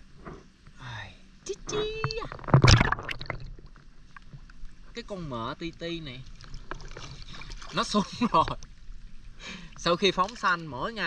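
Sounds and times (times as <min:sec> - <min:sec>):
creek water splashing: 0:01.6 - 0:11.0.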